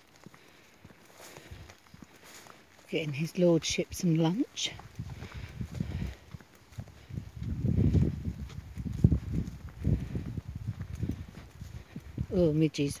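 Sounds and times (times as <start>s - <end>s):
boot footsteps on dirt path: 0.0s - 13.0s
low rumble near microphone: 4.8s - 12.4s.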